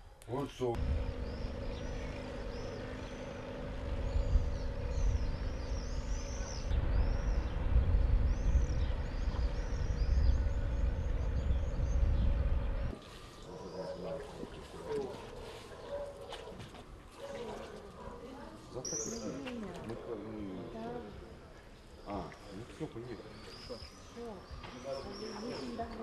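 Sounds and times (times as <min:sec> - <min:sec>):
birds chirping: 0:00.1 - 0:26.0
steady engine hum: 0:00.8 - 0:13.0
wind buffeting microphone: 0:00.8 - 0:13.0.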